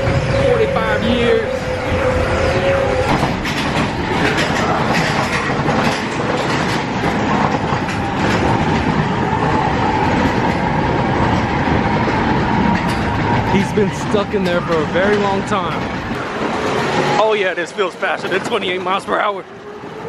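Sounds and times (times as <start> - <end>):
roller coaster clattering on track: 0.0 - 20.0.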